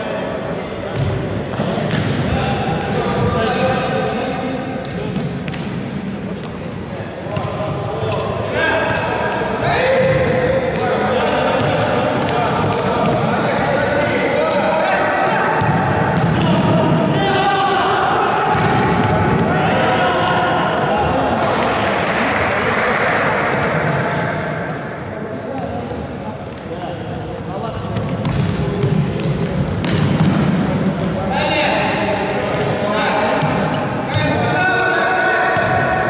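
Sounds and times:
ball kicked and bouncing on wooden court: 0.9s - 3.3s, 4.8s - 5.8s, 15.6s - 17.1s, 27.9s - 31.0s.

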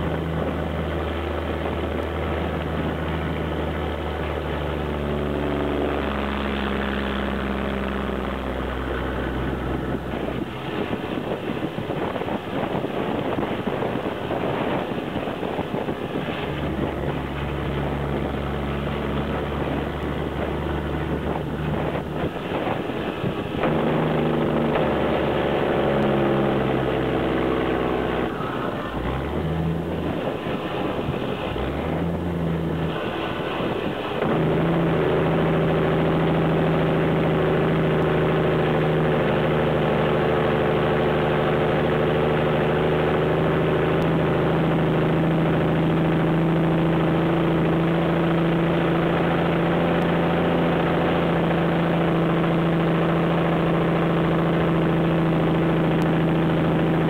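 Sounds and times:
truck diesel engine running: 0.0s - 57.0s.

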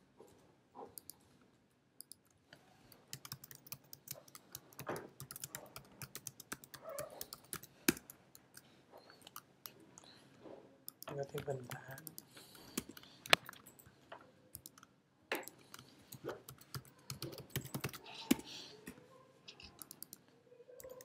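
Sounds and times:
typing on computer keyboard: 3.1s - 8.6s, 10.9s - 19.0s, 19.6s - 21.0s.

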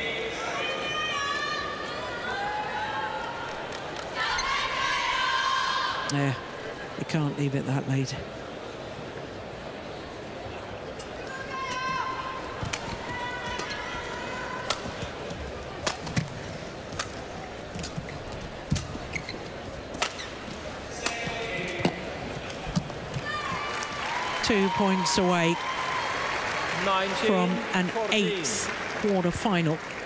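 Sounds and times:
shoes squeaking on court: 14.8s - 23.7s.

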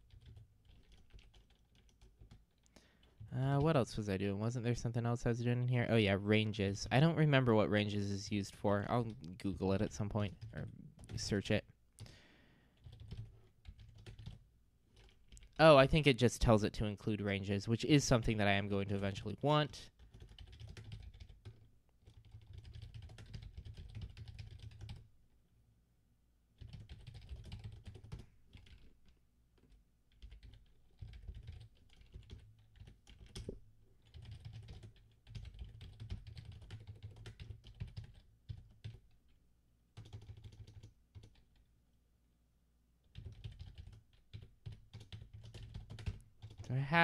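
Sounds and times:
typing on computer keyboard: 0.0s - 3.3s, 12.8s - 15.6s, 19.9s - 25.1s, 26.6s - 39.4s, 40.0s - 41.7s, 43.0s - 46.7s.

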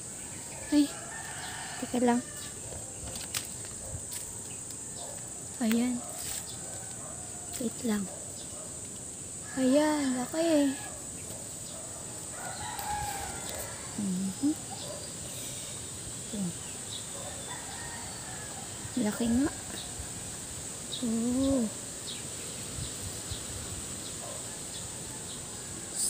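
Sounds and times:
faint rooster crowing: 0.2s - 3.0s, 6.2s - 8.1s, 9.4s - 20.4s, 24.2s - 26.0s
rooster crowing faintly: 9.5s - 15.1s.

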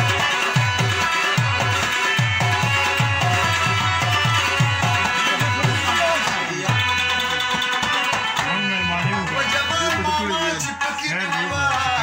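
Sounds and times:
harmonium chords: 0.0s - 12.0s
tabla drumming: 0.0s - 12.0s.

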